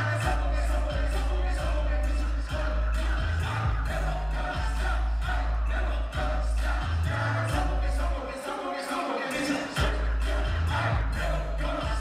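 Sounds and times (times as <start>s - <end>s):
heavy bass beat: 0.0s - 8.5s, 9.4s - 12.0s
hip-hop vocals: 0.0s - 12.0s.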